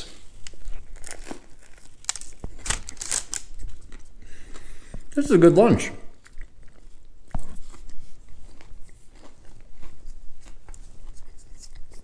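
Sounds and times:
person chewing crunchy food: 0.0s - 5.2s, 6.1s - 12.0s.

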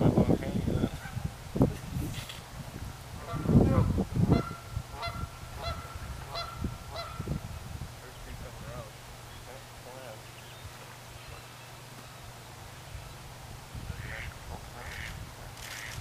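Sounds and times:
geese honking: 3.2s - 7.3s, 13.9s - 15.2s.

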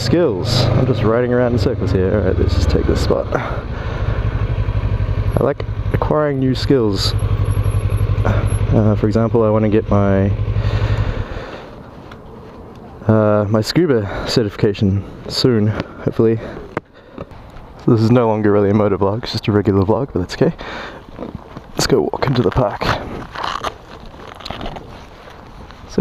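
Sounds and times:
faint outdoor background noise: 0.0s - 26.0s
motorcycle engine idling: 1.1s - 11.6s
footsteps on asphalt: 11.1s - 13.1s, 15.2s - 18.0s, 20.6s - 26.0s
camera handling rustle: 22.4s - 25.9s.

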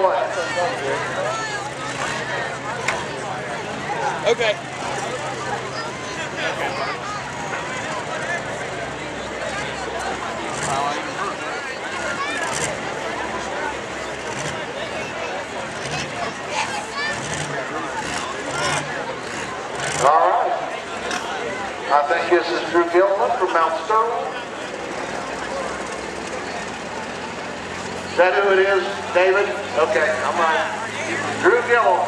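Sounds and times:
diesel engine idling: 0.0s - 32.0s
murmur of voices: 0.0s - 32.0s
spectator chatter: 0.0s - 32.0s.

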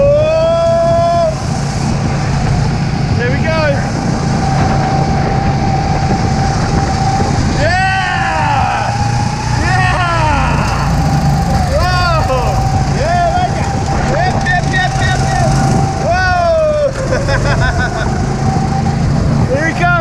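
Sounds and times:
go-kart engine whine: 0.0s - 20.0s
tire squeals: 0.0s - 20.0s.

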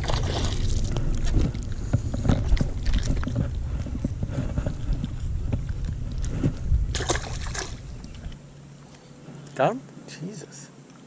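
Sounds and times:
fish splashing in water: 0.0s - 4.2s, 4.8s - 8.3s
wind rumble on microphone: 0.0s - 8.6s.

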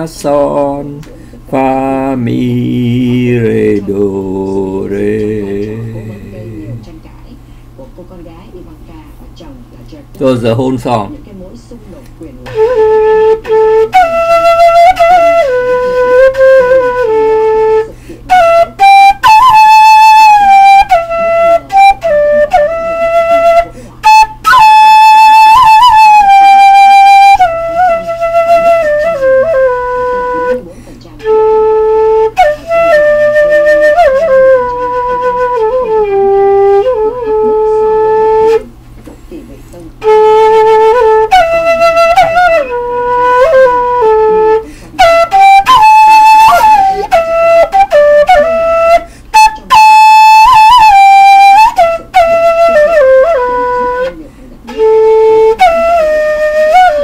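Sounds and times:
flute playing slow melody: 12.4s - 38.8s, 40.0s - 57.0s.

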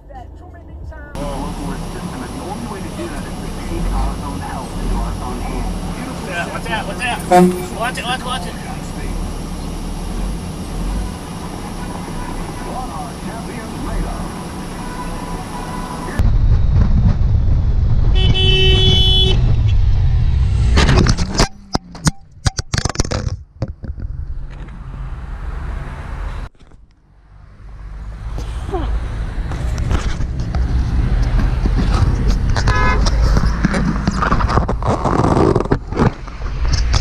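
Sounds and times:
truck cab noise: 0.0s - 17.2s, 18.0s - 19.9s, 20.6s - 37.0s
motorcycle engine rumble: 0.0s - 25.4s, 26.2s - 37.0s
vehicle horn: 6.8s - 8.5s, 14.6s - 16.2s, 18.1s - 19.5s, 32.6s - 33.1s.

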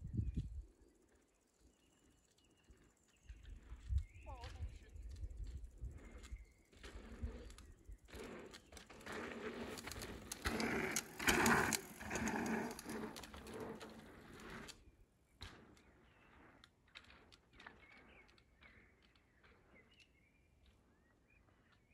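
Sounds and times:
mountain bike on dirt trail: 1.8s - 18.3s.

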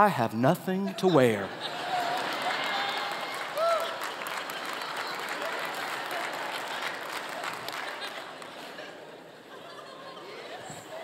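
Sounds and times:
crowd laughing: 0.8s - 11.0s
crowd applauding: 1.6s - 9.1s.

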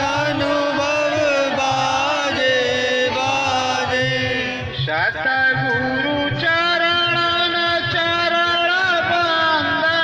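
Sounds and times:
steady low beat: 0.0s - 8.3s.

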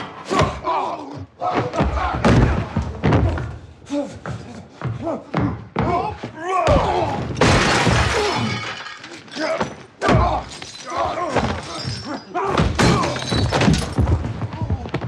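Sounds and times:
men grunting and yelling: 0.2s - 2.8s, 3.9s - 7.4s, 9.2s - 13.4s
glass shattering: 7.4s - 12.2s, 12.8s - 14.1s.

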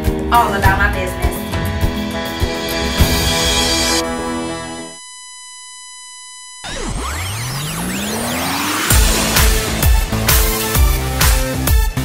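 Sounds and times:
high electronic beep tone: 2.4s - 9.1s.

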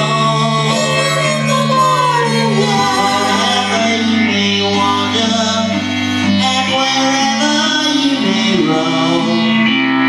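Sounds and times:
woman singing: 0.0s - 9.4s
keyboard chords: 0.0s - 10.0s.

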